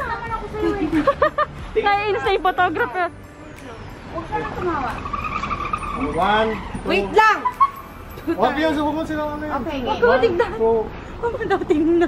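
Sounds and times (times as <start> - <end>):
voices: 0.0 - 12.0
car brakes squealing: 4.6 - 8.1.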